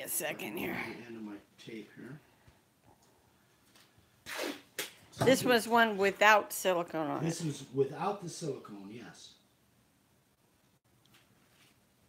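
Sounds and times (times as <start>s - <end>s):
tape ripping: 4.2s - 5.0s.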